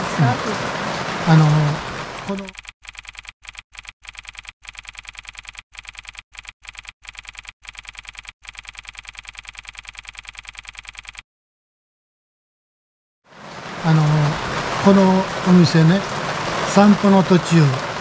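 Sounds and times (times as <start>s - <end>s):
typewriter key clicks: 2.4s - 11.2s.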